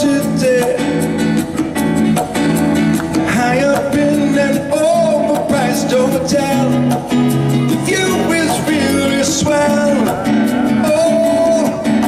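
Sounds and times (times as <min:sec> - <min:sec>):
conga drums: 0:00.0 - 0:12.0
electric keyboard chords: 0:00.0 - 0:12.0
strummed acoustic guitar: 0:00.0 - 0:12.0.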